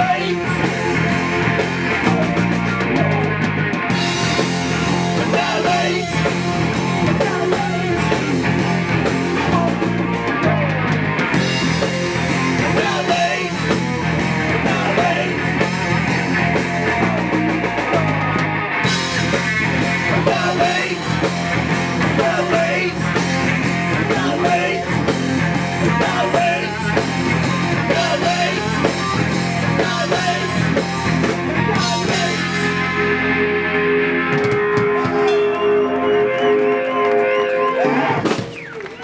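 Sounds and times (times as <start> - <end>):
person singing: 0.0 - 1.0, 5.1 - 8.6, 12.5 - 13.8, 20.0 - 21.2, 22.0 - 23.2, 25.8 - 29.0, 29.6 - 30.8, 31.6 - 33.0
bass guitar: 0.0 - 39.0
drum kit: 0.0 - 39.0
electric guitar: 0.0 - 39.0.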